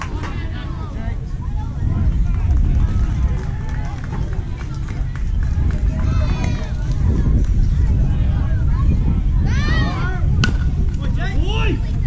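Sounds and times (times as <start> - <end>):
people calling out and chatting: 0.0 - 12.0
steady low rumble: 0.0 - 12.0.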